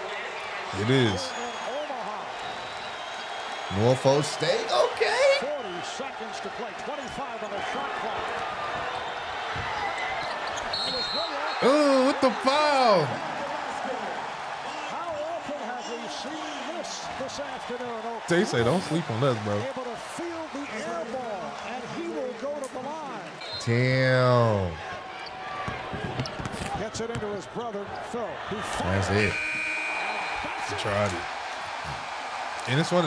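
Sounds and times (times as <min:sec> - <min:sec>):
arena crowd noise: 0:00.0 - 0:33.0
televised basketball game: 0:00.0 - 0:33.0
man talking: 0:00.7 - 0:01.3, 0:03.7 - 0:05.4, 0:11.6 - 0:13.4, 0:18.2 - 0:19.7, 0:23.6 - 0:24.8, 0:28.6 - 0:29.4, 0:30.6 - 0:31.2, 0:32.7 - 0:33.0
referee's whistle: 0:10.2 - 0:13.1, 0:23.4 - 0:24.1, 0:29.2 - 0:31.0.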